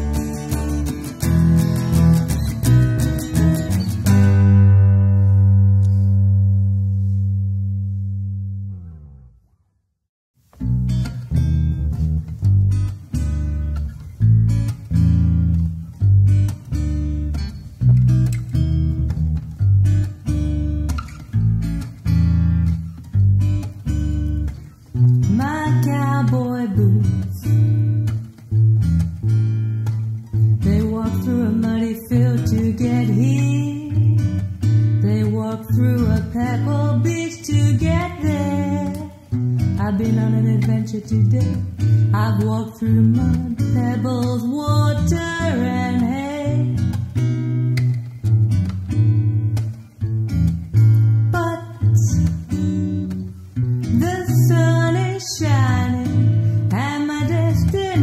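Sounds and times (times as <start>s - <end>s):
acoustic guitar: 0.0s - 9.5s, 10.4s - 58.0s
bass guitar: 0.0s - 9.7s, 10.4s - 58.0s
person singing: 30.6s - 46.8s, 51.4s - 52.9s, 53.9s - 58.0s.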